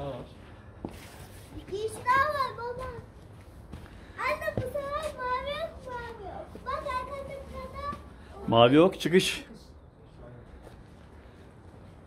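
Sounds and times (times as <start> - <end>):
child's high-pitched voice: 1.5 - 3.2, 4.0 - 8.5.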